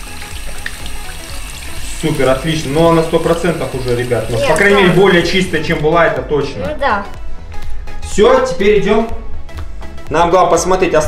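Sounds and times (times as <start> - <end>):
tap water running and splashing: 0.0 - 6.3.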